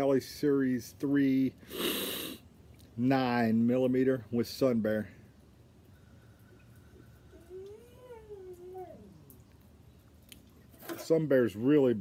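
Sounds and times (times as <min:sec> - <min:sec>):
pet whining: 0:07.3 - 0:09.4.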